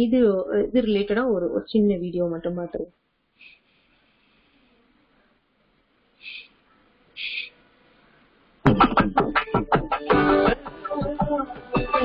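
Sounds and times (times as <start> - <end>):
advert music with sharp strikes: 8.7 - 12.0.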